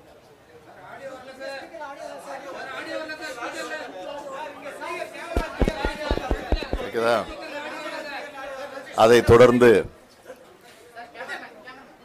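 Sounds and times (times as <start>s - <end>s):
sharp taps: 5.4s - 7.4s.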